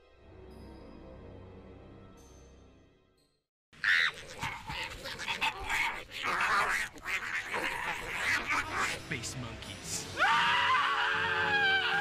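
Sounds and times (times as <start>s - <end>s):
harsh animal-like calls: 3.8s - 9.1s.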